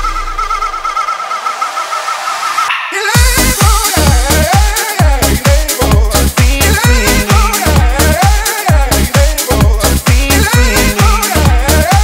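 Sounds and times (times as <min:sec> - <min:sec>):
high sustained wobbling synth tone: 0:00.0 - 0:03.1.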